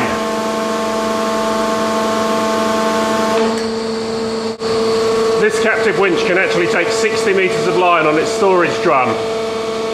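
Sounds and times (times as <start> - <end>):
hydraulic winch humming: 0.0 - 3.6.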